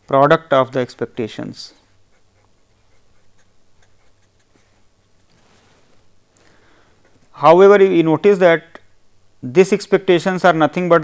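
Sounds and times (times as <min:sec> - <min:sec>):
low steady hum: 0:00.0 - 0:11.0
pen writing on paper: 0:02.1 - 0:04.7.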